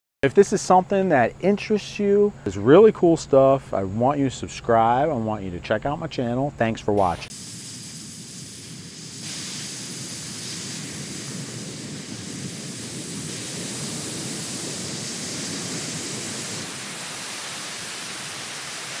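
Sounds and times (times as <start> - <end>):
air hissing from vent: 7.0 - 19.0.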